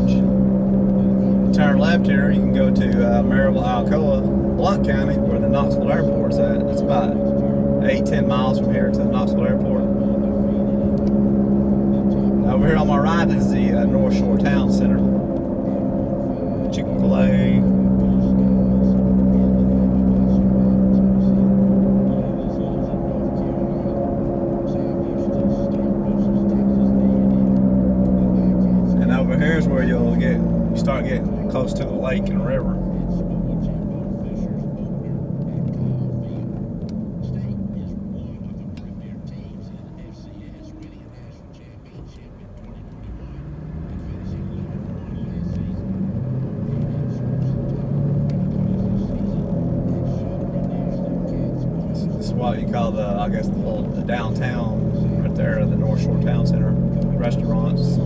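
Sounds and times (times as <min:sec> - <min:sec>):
car engine and road drone: 0:00.0 - 0:58.0.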